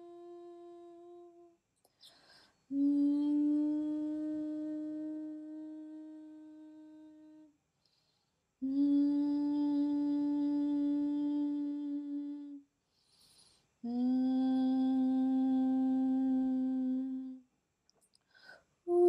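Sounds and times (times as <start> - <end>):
woman humming: 0.0 - 1.6, 2.7 - 7.5, 8.6 - 12.6, 13.8 - 17.4
quick breath: 12.9 - 13.8, 18.2 - 18.8.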